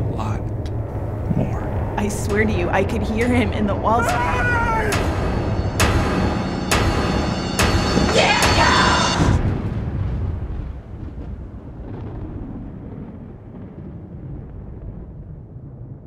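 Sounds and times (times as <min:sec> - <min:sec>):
low rumbling boom: 0:00.0 - 0:16.0
sharp percussive hits: 0:02.1 - 0:09.6.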